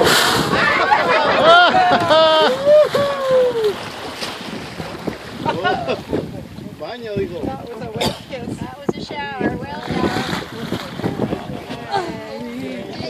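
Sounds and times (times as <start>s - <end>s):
whale blow spraying: 0.0s - 1.2s
water washing against boat: 0.0s - 13.0s
wind on microphone: 0.0s - 13.0s
people shrieking in delight: 0.5s - 3.8s.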